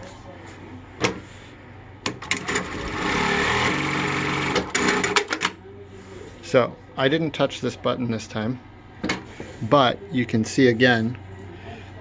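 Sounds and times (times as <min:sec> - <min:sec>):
sewing machine sewing: 0:02.2 - 0:05.5.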